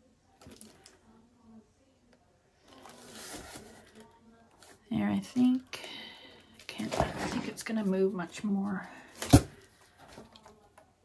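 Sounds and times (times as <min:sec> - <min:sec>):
faint handling sounds: 0:00.3 - 0:01.2, 0:02.0 - 0:10.9.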